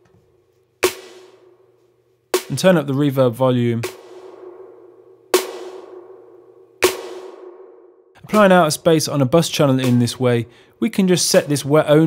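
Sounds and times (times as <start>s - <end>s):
snare drum hit with reverb: 0.8s - 1.4s, 3.8s - 8.4s, 9.8s - 10.3s.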